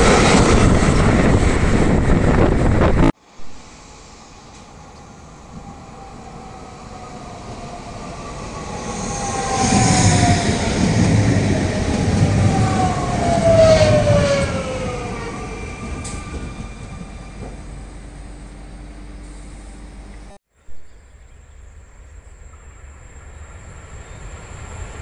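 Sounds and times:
electric whine of train: 0:00.0 - 0:20.4, 0:21.5 - 0:25.0.

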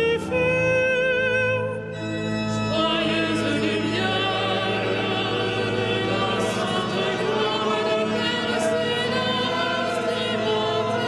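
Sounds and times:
pipe organ notes: 0:00.0 - 0:11.0
choir singing: 0:02.0 - 0:11.0.

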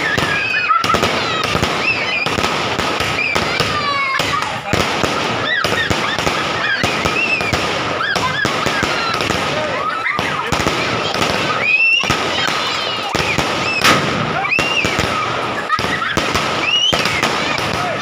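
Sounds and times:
fireworks bangs and crackles: 0:00.0 - 0:18.0
rising and falling whistles: 0:07.0 - 0:08.2, 0:13.2 - 0:15.0, 0:16.6 - 0:17.2.

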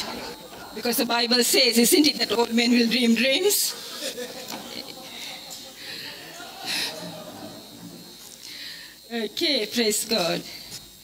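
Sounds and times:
congregation murmuring: 0:00.0 - 0:09.1
faint scattered voices: 0:00.0 - 0:10.7
quiet laughter: 0:03.7 - 0:08.2.

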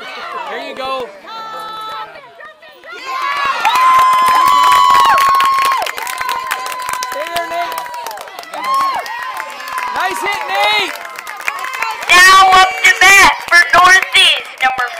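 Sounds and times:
spectators cheering and yelling: 0:00.0 - 0:14.9.

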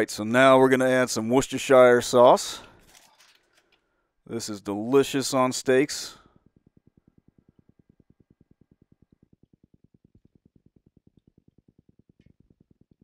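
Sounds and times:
low even pulse: 0:06.1 - 0:13.0.

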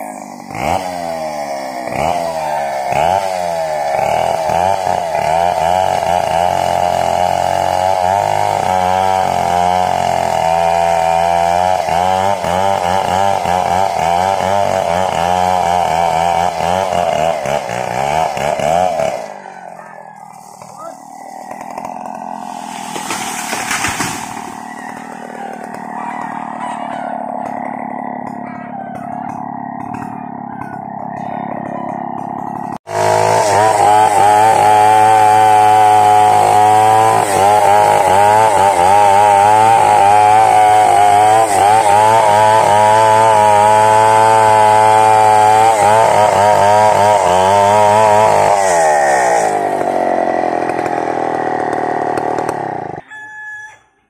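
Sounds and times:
chainsaw cutting wood: 0:00.0 - 0:53.7.

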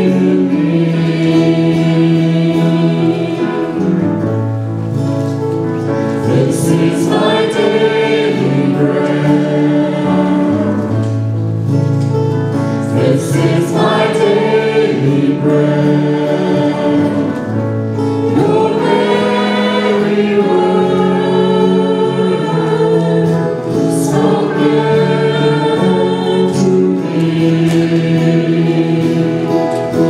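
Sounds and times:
congregation singing a hymn: 0:00.0 - 0:30.0.

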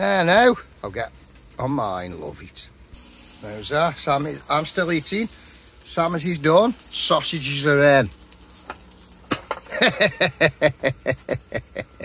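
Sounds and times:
person laughing: 0:09.6 - 0:12.0.

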